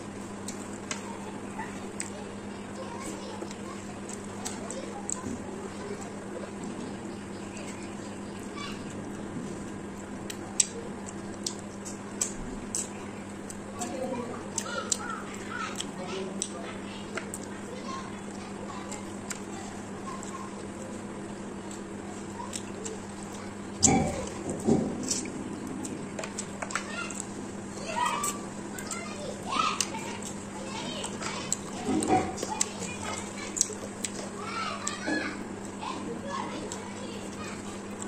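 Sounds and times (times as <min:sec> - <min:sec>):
steady low hum: 0:00.0 - 0:38.0
voices calling out: 0:00.0 - 0:38.0.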